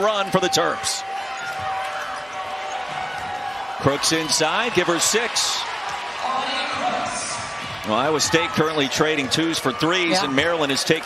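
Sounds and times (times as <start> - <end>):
arena crowd hum: 0.0 - 11.0.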